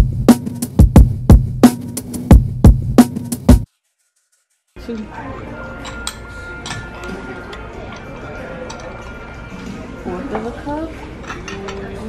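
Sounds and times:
background music: 0:04.8 - 0:12.0
murmur of voices: 0:04.8 - 0:12.0.

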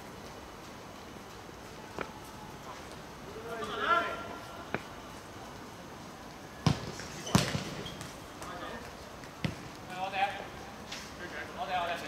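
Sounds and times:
football kicked and bouncing: 0:06.6 - 0:08.2, 0:09.4 - 0:09.7.

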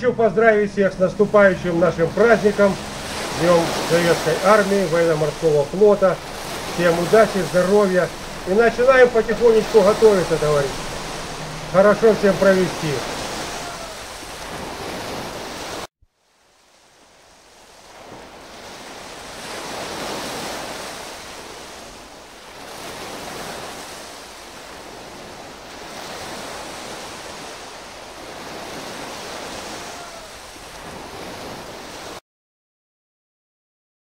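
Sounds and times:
sea surf rushing: 0:00.0 - 0:32.2.

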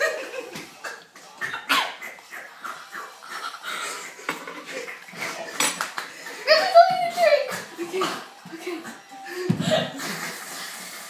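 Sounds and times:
girls giggling: 0:00.0 - 0:10.5
girls muttering: 0:06.4 - 0:10.0.

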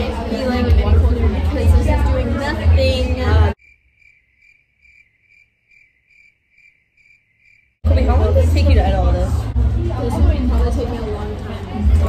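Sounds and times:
crickets chirping: 0:03.6 - 0:07.8.

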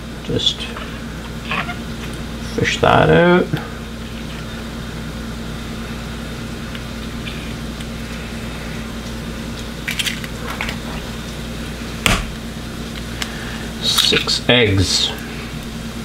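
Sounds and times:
steady low hum: 0:00.0 - 0:16.0
egg cracking against bowl: 0:09.0 - 0:11.0.

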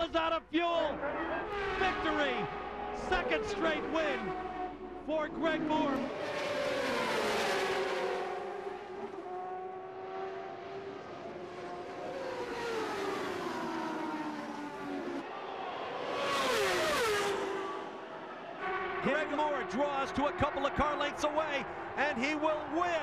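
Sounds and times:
race cars passing by: 0:00.0 - 0:23.0.

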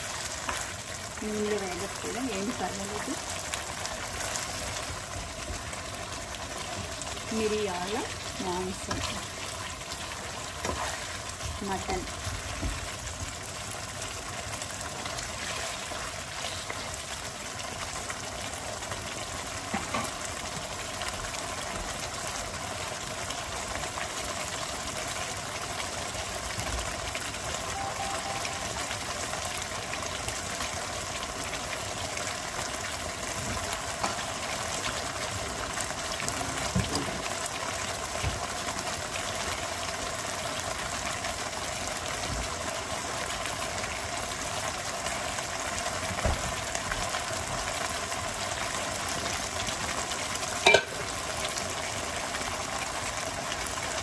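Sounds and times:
curry bubbling in a pan: 0:00.0 - 0:27.8, 0:28.4 - 0:54.0.

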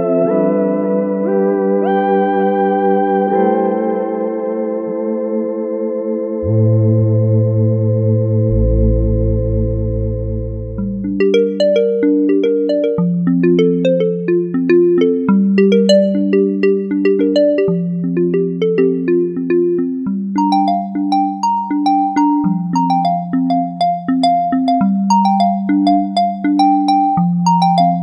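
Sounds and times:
deep bass notes: 0:06.5 - 0:11.2
synthesizer pad chord: 0:10.7 - 0:28.0.

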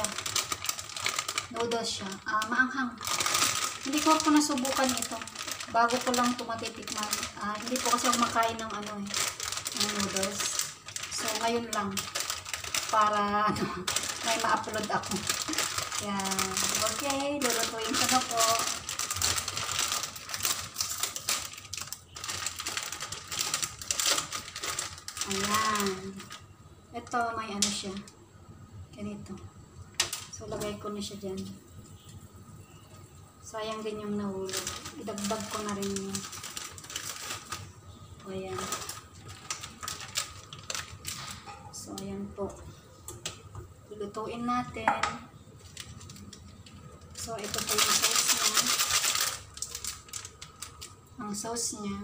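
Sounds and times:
plastic packet crinkling: 0:00.0 - 0:28.1, 0:29.8 - 0:30.8, 0:33.6 - 0:41.8, 0:45.4 - 0:51.4
plastic sachet clicks and rustles: 0:00.0 - 0:28.1, 0:29.9 - 0:30.8, 0:33.7 - 0:41.6, 0:45.4 - 0:51.1.

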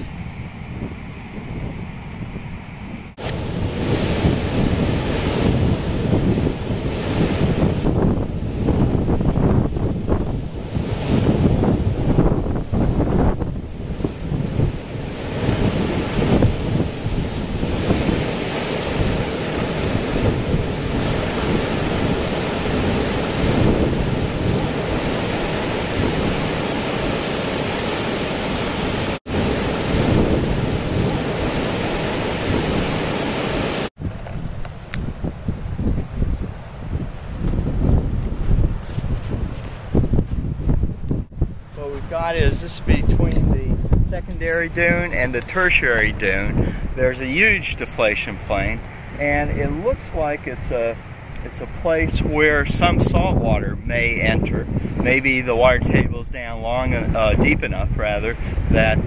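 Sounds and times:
strong wind buffeting microphone: 0:00.0 - 0:59.0.

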